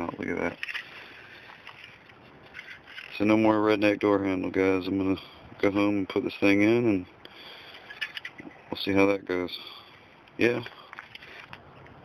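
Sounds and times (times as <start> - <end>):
plastic handling sounds: 0.0 - 4.1, 10.3 - 12.0
faint background noise: 0.0 - 12.0.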